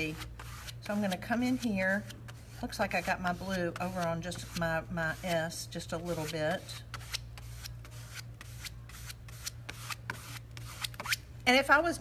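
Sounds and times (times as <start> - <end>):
scraping on mesh stencil: 0.0 - 11.2.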